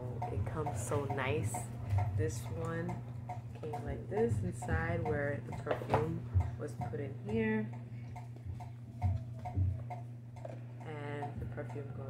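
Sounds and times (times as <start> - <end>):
light even ticking: 0.0 - 12.0
steady low hum: 0.0 - 12.0.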